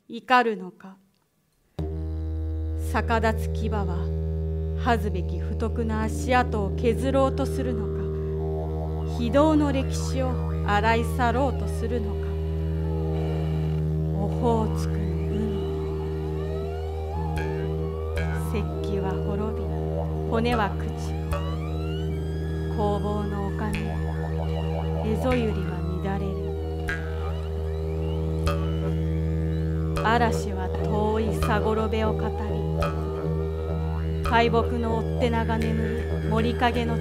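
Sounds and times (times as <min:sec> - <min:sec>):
low musical drone: 0:05.5 - 0:37.0.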